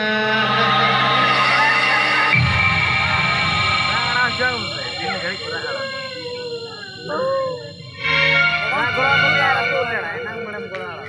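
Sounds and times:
high wailing cry: 0:04.7 - 0:09.6.

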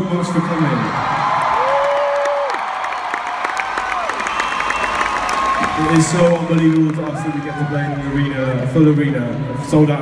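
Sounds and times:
crowd cheering and clapping: 0:00.0 - 0:08.2.

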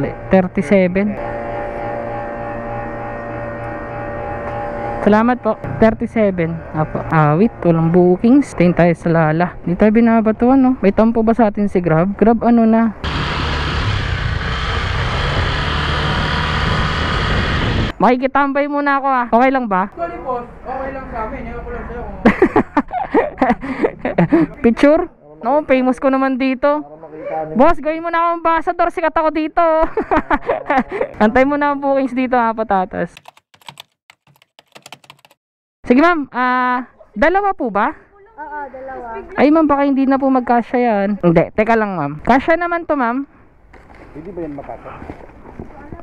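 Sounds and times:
scooter engine hum: 0:00.0 - 0:05.8, 0:13.0 - 0:17.9
road and wind noise: 0:01.3 - 0:18.0
keyboard typing clicks: 0:33.2 - 0:35.4.

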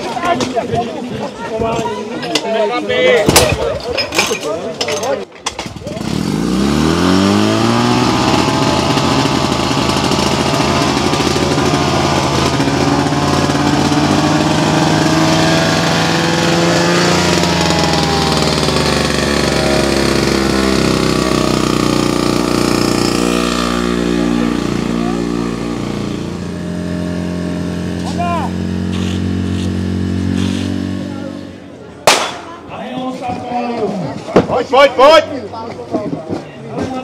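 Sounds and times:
pump engine running at high revs: 0:05.9 - 0:31.6.

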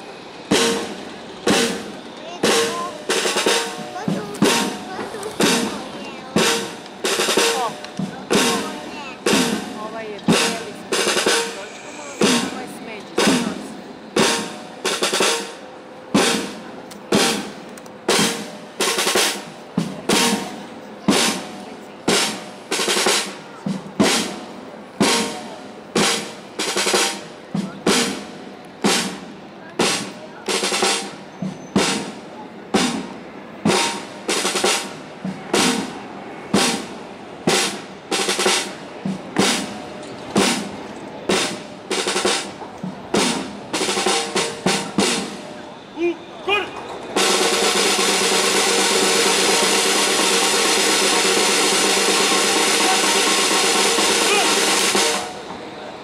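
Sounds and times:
drum roll: 0:00.0 - 0:45.6, 0:46.5 - 0:56.0
snare drum march cadence: 0:00.0 - 0:55.9.

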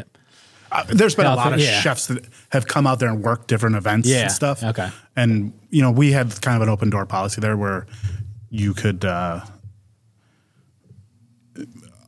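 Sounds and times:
short low voice sound: 0:00.7 - 0:01.9, 0:04.1 - 0:04.4.

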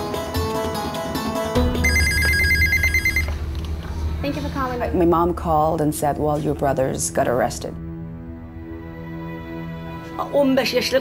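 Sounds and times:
telephone ringing: 0:01.7 - 0:03.4.

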